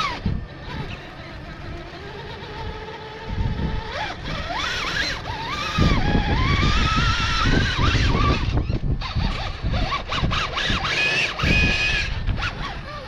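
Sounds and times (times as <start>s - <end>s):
electric motor whining: 0.0s - 13.0s.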